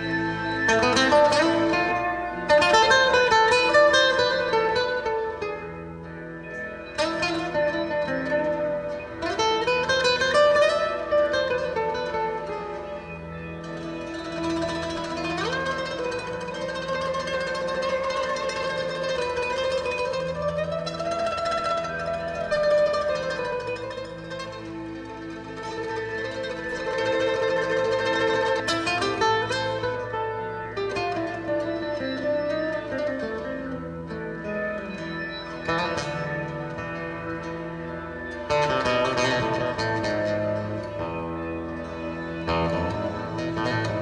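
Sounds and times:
guitar chords strummed: 0.0s - 44.0s
nylon-string guitar picked melody: 0.0s - 44.0s.

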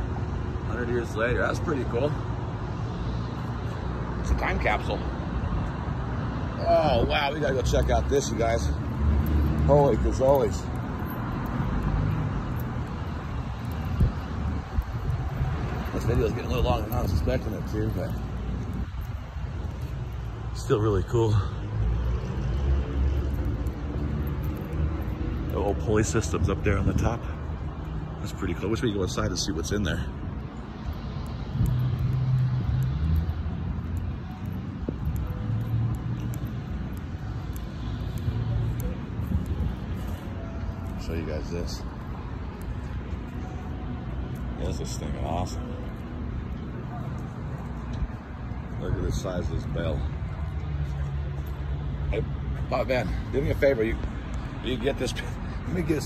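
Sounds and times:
engine hum: 0.0s - 56.0s
low rumble of street traffic: 0.0s - 56.0s.

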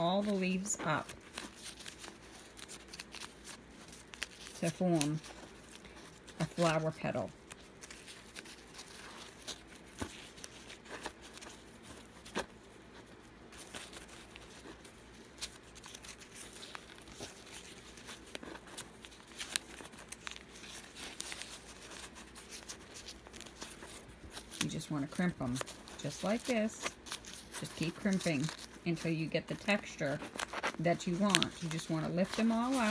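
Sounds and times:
paper crackling and rustling: 0.0s - 32.9s.

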